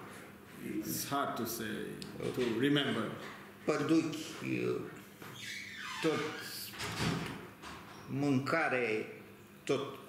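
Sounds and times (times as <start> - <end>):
elderly man speaking: 0.6 - 5.0.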